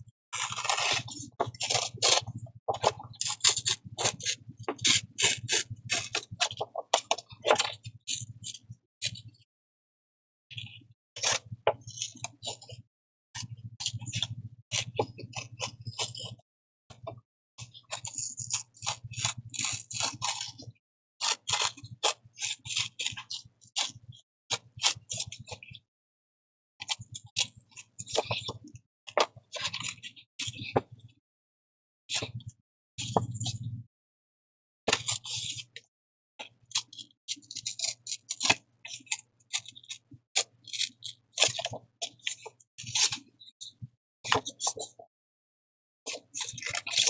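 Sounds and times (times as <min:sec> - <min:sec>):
paper tearing: 0:00.4 - 0:02.3
paper rustling and crinkling: 0:00.4 - 0:07.8, 0:40.6 - 0:43.2, 0:46.1 - 0:47.0.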